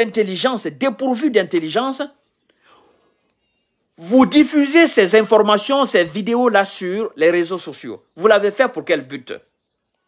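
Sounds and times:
man speaking: 0.0s - 2.3s, 4.0s - 9.5s
faint soft breath: 2.4s - 3.5s.

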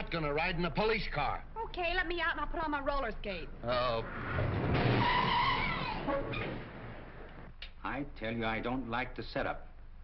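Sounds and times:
road noise: 3.5s - 7.5s
car tyres screeching: 3.7s - 7.3s.

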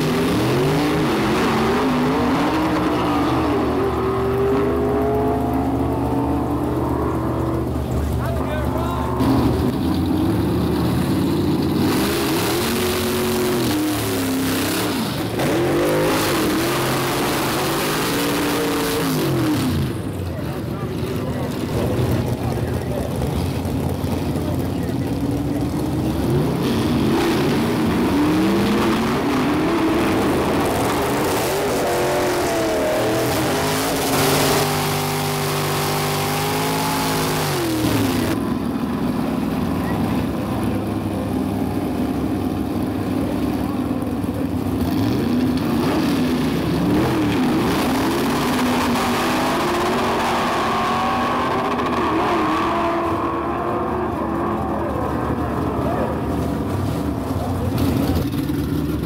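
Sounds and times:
drag car engines idling and revving: 0.0s - 59.0s.

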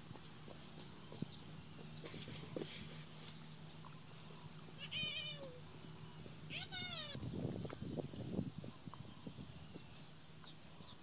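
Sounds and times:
high wavering animal cries: 4.8s - 5.6s, 6.5s - 7.3s.

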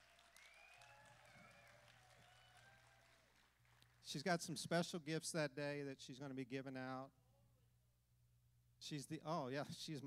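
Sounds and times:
faint audience applause: 0.0s - 4.2s.

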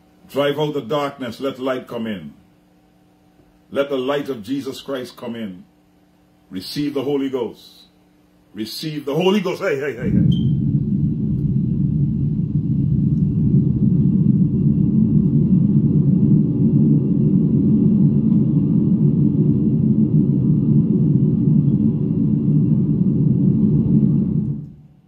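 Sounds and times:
low rumble on microphone: 10.0s - 25.0s.

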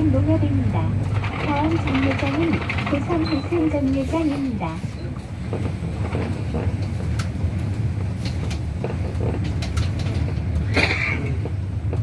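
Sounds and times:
bus engine and road rumble: 0.0s - 12.0s
rattles and clicks: 1.0s - 12.0s.

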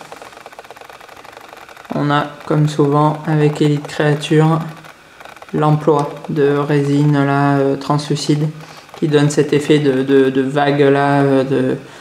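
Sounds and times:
lens zoom motor ticking: 0.0s - 7.7s, 8.5s - 9.1s.

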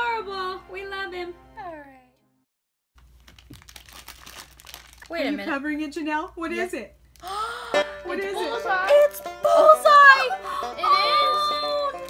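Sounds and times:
foil packet crinkling: 3.0s - 5.9s
plastic bag drawn out: 3.1s - 5.4s.

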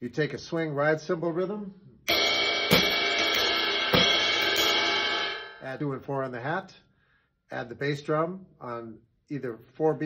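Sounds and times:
ride cymbal swing rhythm: 2.1s - 5.8s.

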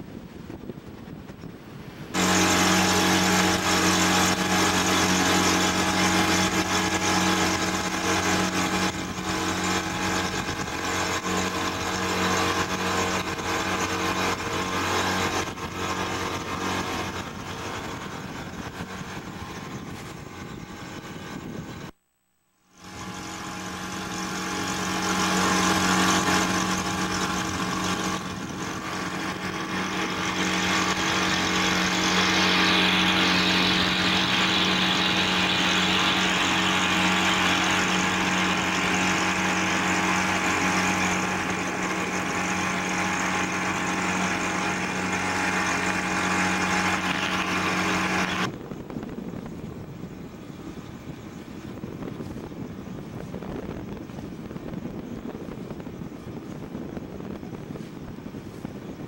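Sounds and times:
boat engine humming: 0.0s - 59.0s
water noise: 0.0s - 59.0s
wind: 0.0s - 59.0s.

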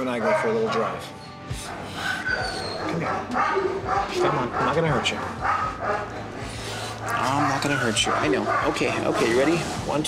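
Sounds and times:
dog whining: 1.1s - 4.8s, 6.8s - 8.7s.

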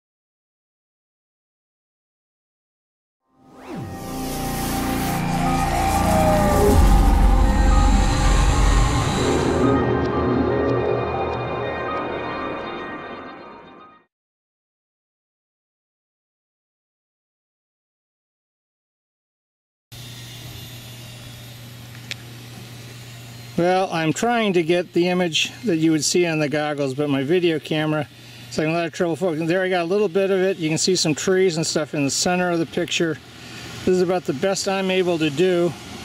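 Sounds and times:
sustained musical tones: 3.3s - 14.1s
low hum: 3.5s - 13.8s
deep rumble: 4.1s - 12.4s.

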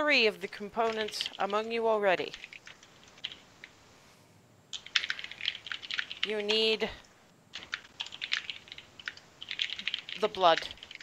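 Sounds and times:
typing on computer keyboard: 0.8s - 3.7s, 4.7s - 6.9s, 7.5s - 11.0s.

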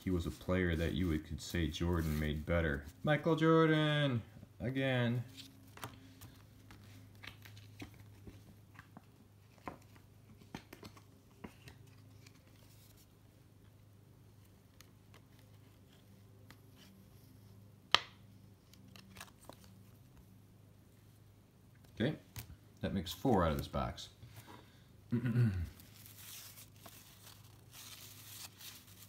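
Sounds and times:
cardboard cards clicking and rustling: 5.3s - 13.1s, 17.9s - 20.1s, 25.8s - 29.0s.

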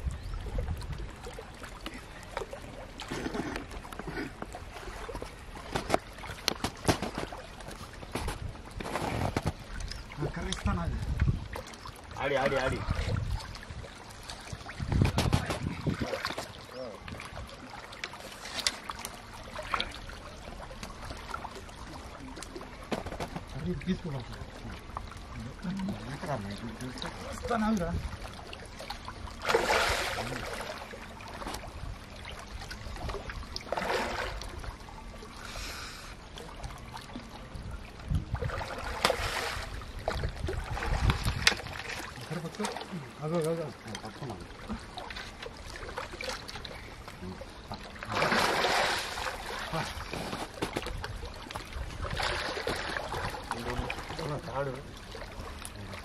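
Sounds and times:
wind buffeting microphone: 0.0s - 1.2s, 8.0s - 11.6s, 12.3s - 17.4s, 37.4s - 38.9s, 39.6s - 41.9s
water sloshing around waders: 0.0s - 56.0s.

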